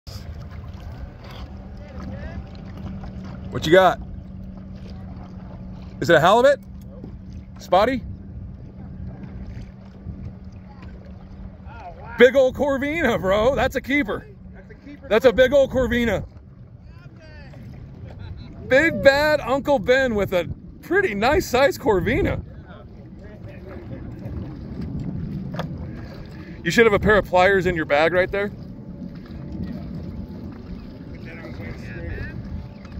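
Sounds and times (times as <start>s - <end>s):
small waves: 0.1s - 32.9s
wind buffeting microphone: 0.1s - 32.9s.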